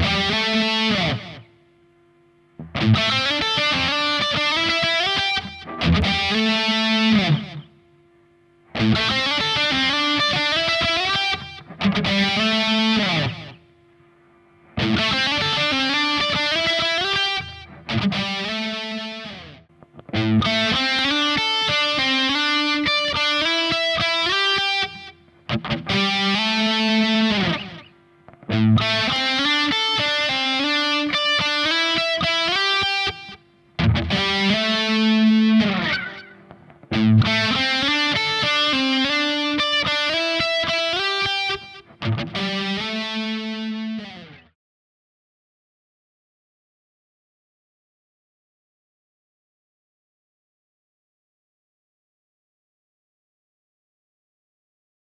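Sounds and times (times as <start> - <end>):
distorted electric guitar lick: 0.0 - 1.6, 2.5 - 7.8, 8.6 - 13.7, 14.6 - 44.5.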